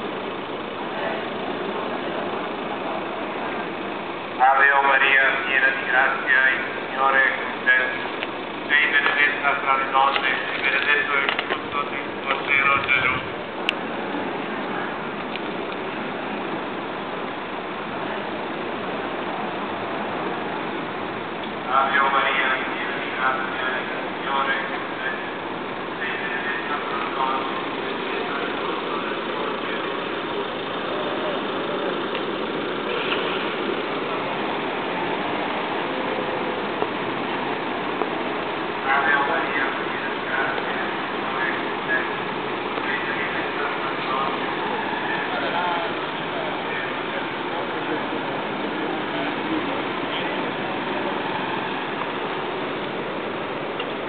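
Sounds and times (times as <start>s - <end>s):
car and scooter engines idling: 0.0s - 54.0s
murmur of crowd voices: 0.0s - 54.0s.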